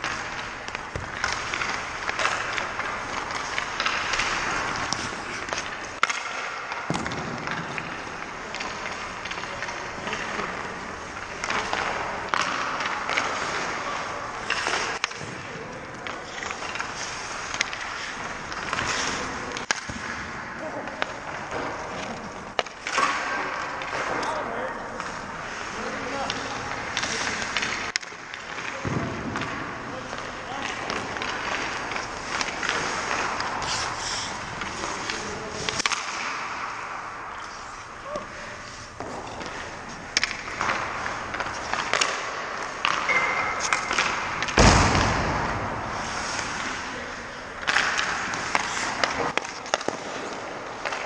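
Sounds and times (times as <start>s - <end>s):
ice skate blades scraping: 0.0s - 20.2s, 29.5s - 44.6s, 45.5s - 51.0s
stick and puck clicks: 0.0s - 20.2s, 20.8s - 45.6s, 46.3s - 51.0s
arena noise: 0.0s - 51.0s.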